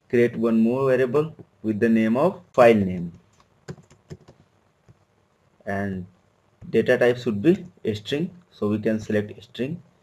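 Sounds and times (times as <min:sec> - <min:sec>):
computer keyboard typing: 0:03.3 - 0:04.5.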